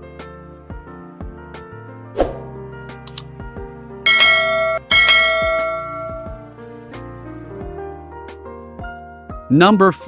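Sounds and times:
background music: 0:00.0 - 0:10.0
double mouse click: 0:03.1 - 0:03.3
bright bell dings: 0:04.1 - 0:06.4.

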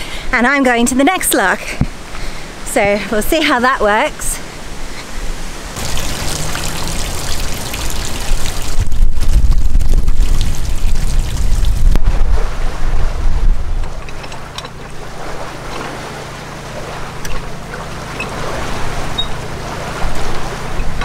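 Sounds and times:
rushing water: 0:04.4 - 0:21.0
wind gusting on microphone: 0:04.6 - 0:14.2
low engine hum: 0:05.8 - 0:21.0.

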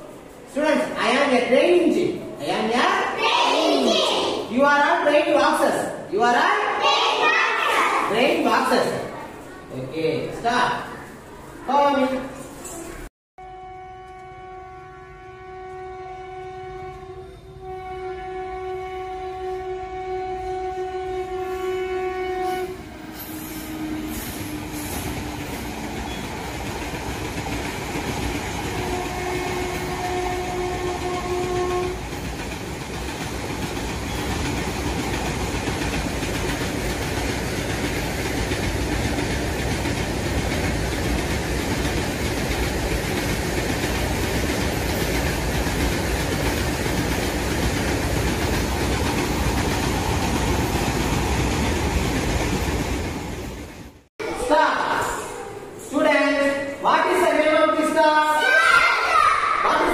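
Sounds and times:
train horn: 0:13.4 - 0:24.9, 0:28.6 - 0:32.2
moving train running noise: 0:13.8 - 0:54.0.

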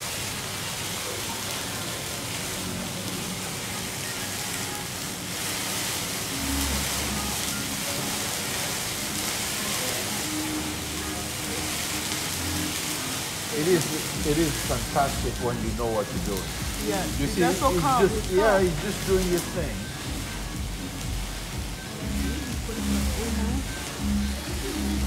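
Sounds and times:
faint restaurant background: 0:00.0 - 0:25.0
meat sizzling in a hot pan: 0:00.1 - 0:25.0.

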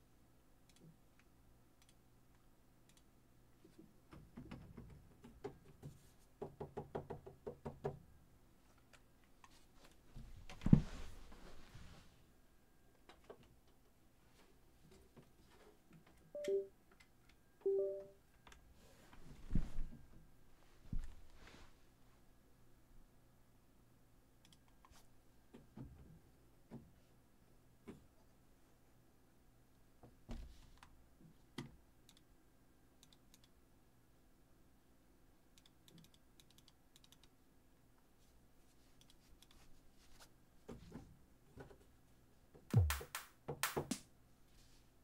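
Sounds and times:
keyboard and mouse clicks: 0:00.6 - 0:02.0, 0:02.8 - 0:03.1, 0:24.4 - 0:25.0, 0:31.6 - 0:32.3, 0:33.0 - 0:33.6, 0:35.6 - 0:37.4
two-note system chimes: 0:16.4 - 0:16.7, 0:17.7 - 0:18.1.

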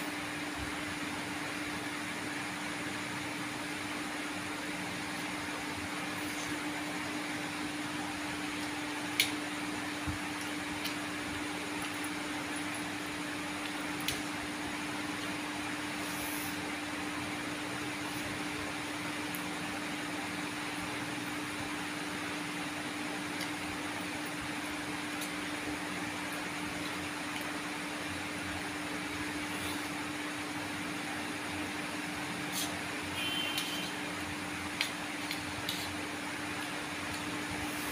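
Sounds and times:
electric fan humming: 0:00.0 - 0:37.9.

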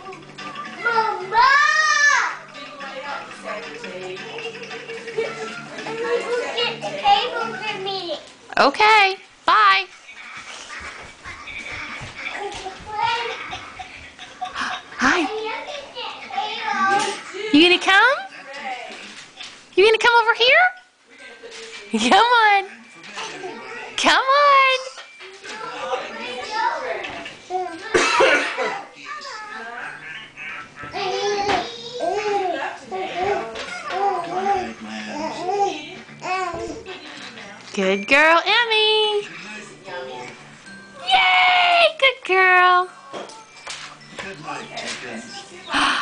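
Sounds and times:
children chattering: 0:00.0 - 0:08.3, 0:10.0 - 0:17.5, 0:25.4 - 0:37.2
baby coughing: 0:27.9 - 0:29.0.

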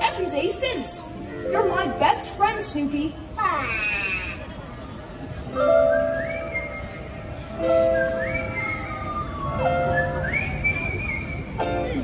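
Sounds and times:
sustained accompaniment notes: 0:05.5 - 0:12.0
whistled melody: 0:05.6 - 0:12.0.

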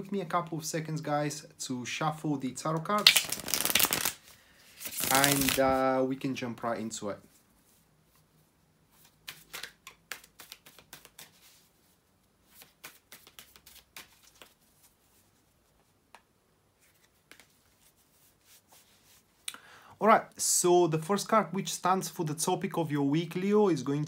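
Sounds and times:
cards shuffled by hand: 0:02.8 - 0:05.8, 0:08.9 - 0:16.2, 0:16.8 - 0:19.2.

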